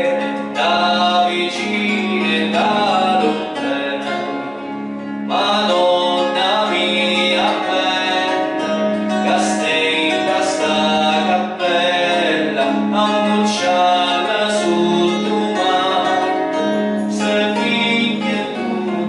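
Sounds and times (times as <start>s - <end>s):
acoustic guitar: 0.0s - 19.0s
man singing into a microphone: 0.0s - 19.0s.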